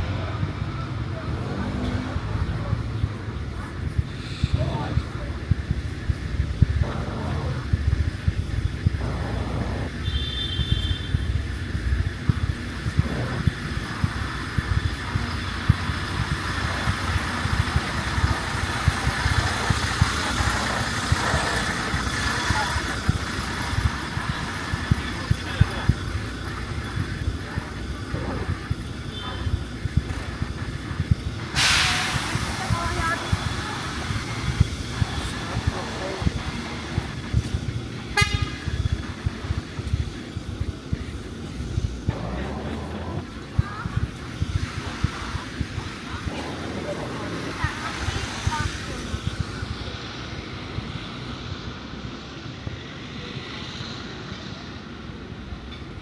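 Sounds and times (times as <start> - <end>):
passers-by talking: 0.0 - 10.4, 11.0 - 56.0
steady traffic: 0.0 - 56.0
loud short hiss: 31.5 - 32.6
footsteps on pavement: 32.4 - 48.7.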